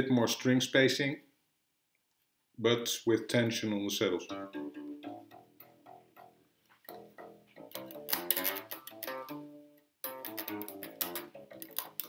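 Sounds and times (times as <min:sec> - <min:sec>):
bass guitar plucked notes: 0:04.2 - 0:12.0.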